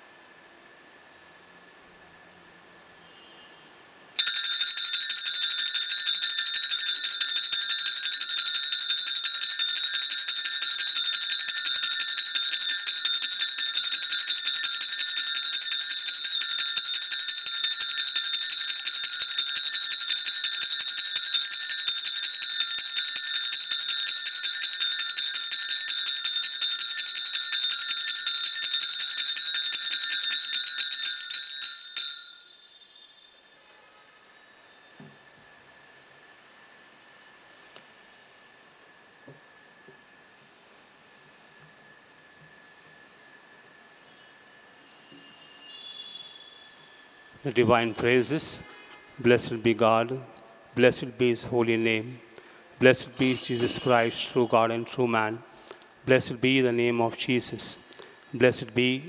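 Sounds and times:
altar bells jingling: 4.2 - 33.2.

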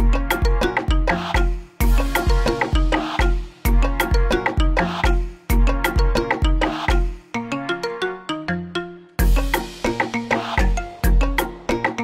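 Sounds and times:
electronic club music: 0.0 - 7.3, 9.2 - 12.0.

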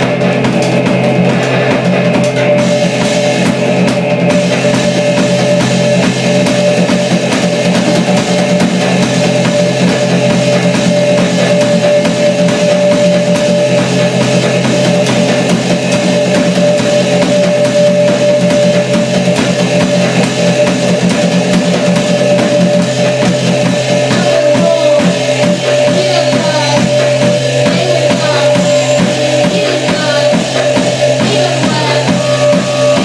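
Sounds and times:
drum kit playing: 0.0 - 33.0
electronic drone: 0.0 - 33.0
low repeating pulse: 0.0 - 33.0.

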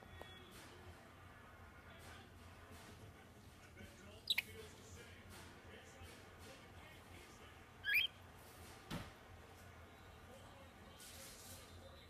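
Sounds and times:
faint background hum: 0.0 - 12.0
bird double chirp: 7.9 - 8.1.

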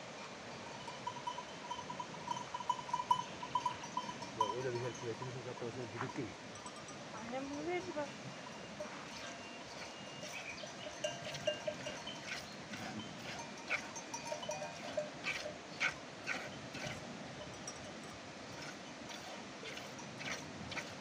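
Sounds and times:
sheep bells clinking: 0.1 - 21.0.

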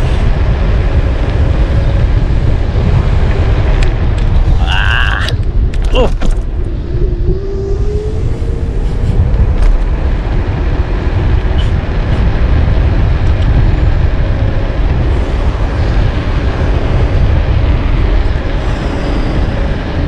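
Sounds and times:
wind noise on microphone: 0.0 - 20.0.

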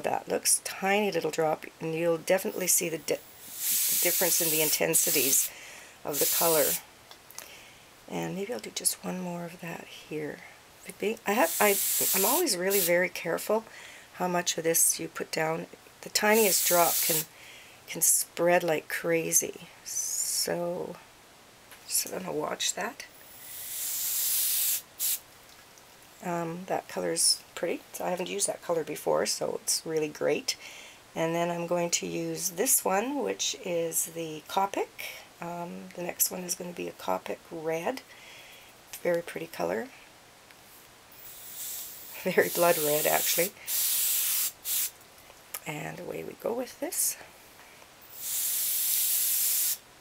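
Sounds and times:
compressed air hissing: 3.2 - 6.8, 11.3 - 13.0, 16.3 - 17.3, 23.2 - 25.2, 41.2 - 44.9, 48.1 - 49.8.

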